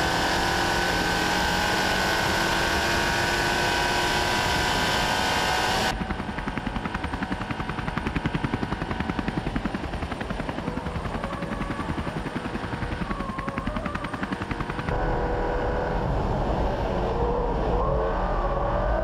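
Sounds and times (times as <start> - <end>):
helicopter rotor chopping: 0.0 - 17.0
faint car engine: 14.1 - 19.0.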